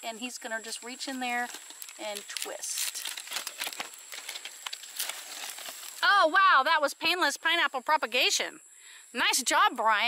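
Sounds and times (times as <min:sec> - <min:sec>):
leaves rustling and crackling: 0:00.0 - 0:06.3.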